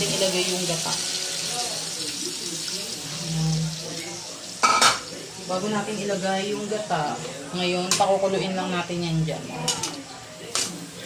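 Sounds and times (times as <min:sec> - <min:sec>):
sizzling: 0:00.0 - 0:11.0.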